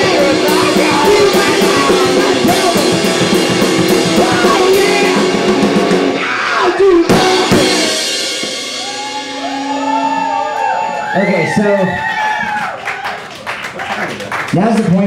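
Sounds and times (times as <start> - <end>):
rapid rock drumming: 0.0 - 13.9
electric guitar ringing: 6.8 - 11.6
hard drum hit: 6.9 - 10.4.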